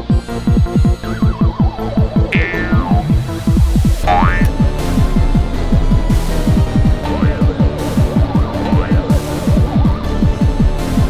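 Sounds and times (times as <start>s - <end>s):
electronic kick drum: 0.7s - 4.8s, 5.8s - 10.0s
synth backing: 1.0s - 11.0s.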